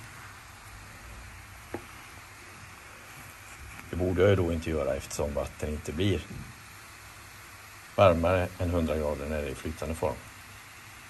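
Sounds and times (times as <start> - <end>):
faint hiss of boiling water: 0.0 - 11.0.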